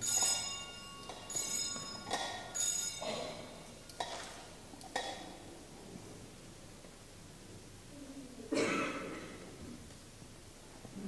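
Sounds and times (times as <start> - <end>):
censer chains clinking: 0.0 - 5.3.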